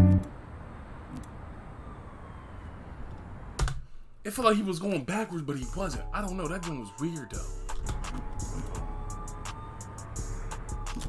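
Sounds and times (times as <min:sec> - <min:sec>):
low background noise: 0:00.0 - 0:07.4.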